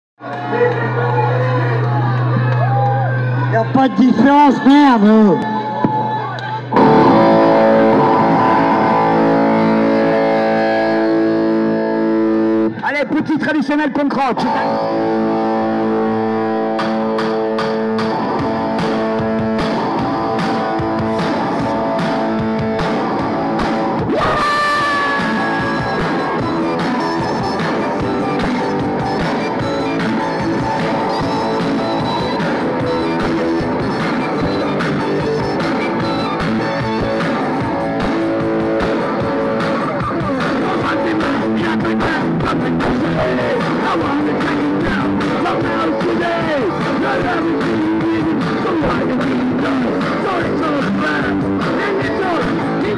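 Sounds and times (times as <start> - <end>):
electric guitar: 5.3 - 13.0, 14.2 - 52.9
drums: 5.8 - 12.7, 15.0 - 52.9
live rock band playing: 6.7 - 12.9, 14.4 - 52.9.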